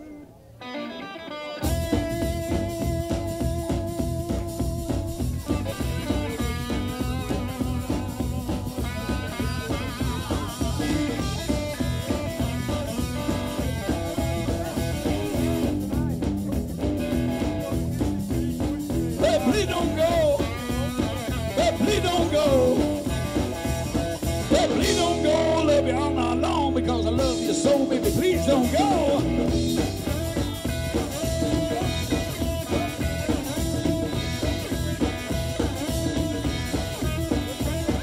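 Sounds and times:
electric guitar: 0.0s - 38.0s
drum kit: 1.6s - 38.0s
upright double bass: 1.7s - 38.0s.

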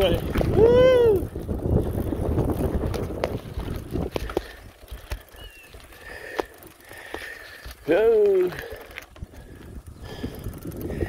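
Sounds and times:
wind buffeting microphone: 0.0s - 5.9s, 8.0s - 11.0s
bicycle tyres rolling on asphalt: 0.0s - 11.0s.

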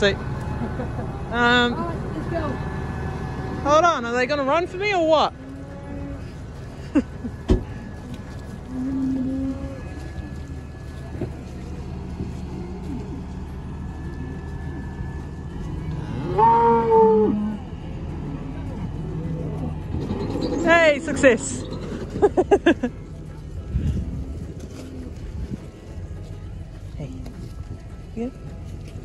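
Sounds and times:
tractor engine humming: 0.0s - 29.0s
cows mooing: 5.3s - 6.5s, 7.8s - 22.8s.

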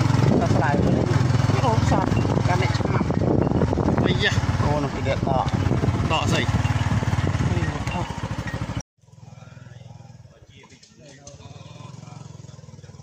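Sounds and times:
small motorcycle engine running: 0.0s - 13.0s
people talking: 0.3s - 3.2s, 4.0s - 6.5s, 7.4s - 8.1s, 9.2s - 13.0s.

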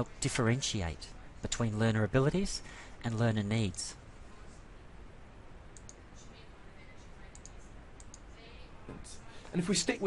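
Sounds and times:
background hiss: 0.0s - 10.0s
computer mouse clicks: 5.7s - 6.0s, 7.3s - 8.3s.

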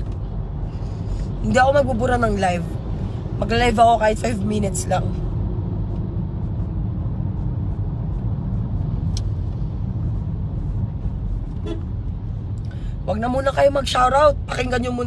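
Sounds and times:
car noise rumble: 0.0s - 15.0s.

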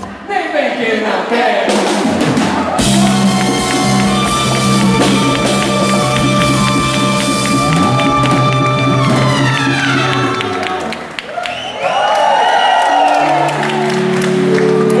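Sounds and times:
drums: 1.6s - 11.1s
audience cheering: 2.1s - 15.0s
horn section playing chord: 2.8s - 11.1s.

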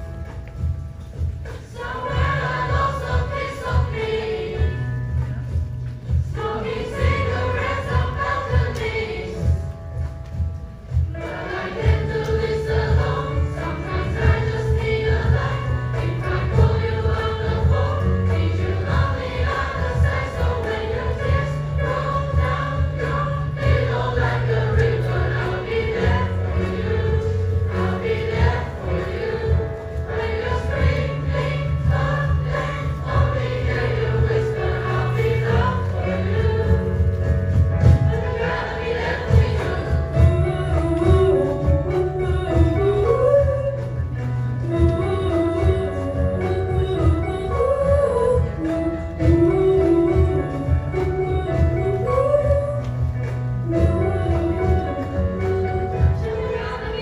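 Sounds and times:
instrumental accompaniment: 0.0s - 57.0s
children's choir singing: 1.2s - 10.1s, 10.9s - 44.0s, 44.6s - 53.0s, 53.7s - 57.0s.

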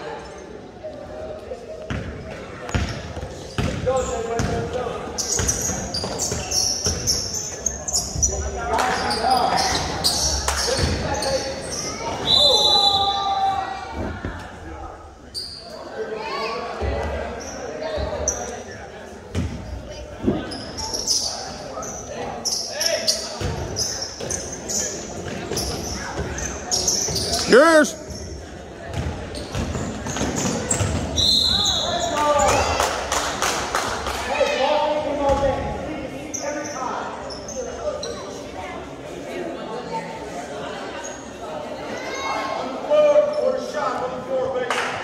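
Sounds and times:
sneakers squeaking: 1.9s - 13.2s, 15.3s - 15.8s, 19.3s - 32.7s, 36.2s - 38.4s
people calling out: 27.4s - 28.0s.

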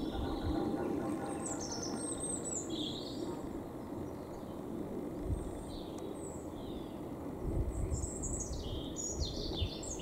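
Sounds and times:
low outdoor background hum: 0.0s - 10.0s.

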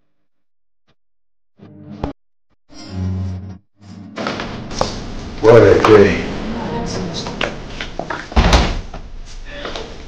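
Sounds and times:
heavy thud: 8.4s - 9.1s.

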